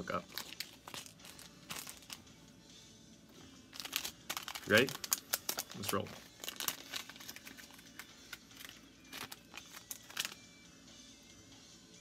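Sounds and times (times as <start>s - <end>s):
crinkling of handled materials: 0.0s - 2.3s, 3.7s - 10.4s.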